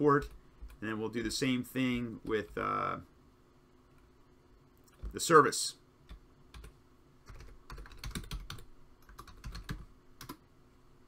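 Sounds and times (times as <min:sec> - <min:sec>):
typing on computer keyboard: 0:06.1 - 0:06.7, 0:07.3 - 0:10.4.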